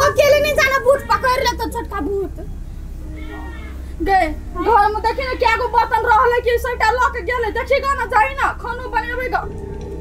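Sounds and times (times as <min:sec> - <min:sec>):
cat meowing: 0:03.0 - 0:03.9.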